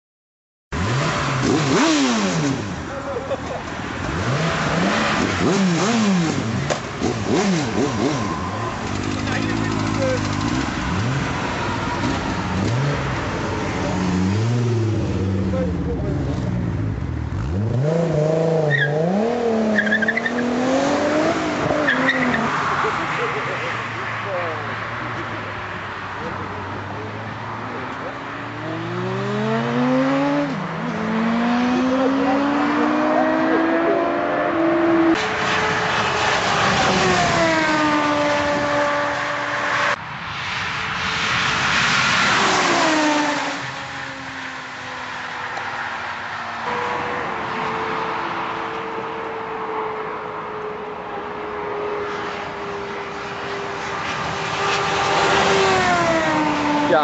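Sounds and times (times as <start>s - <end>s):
car engine racing: 0.7s - 57.0s
motorcycle engine racing: 0.8s - 25.4s, 26.2s - 40.0s, 41.0s - 45.7s, 51.4s - 57.0s.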